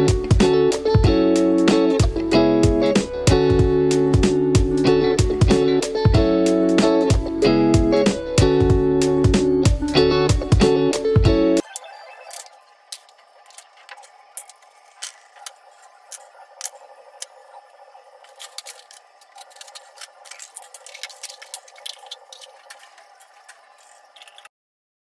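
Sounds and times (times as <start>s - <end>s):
faint steady hum: 11.6s - 24.5s
pots and lids clinking: 18.2s - 24.5s.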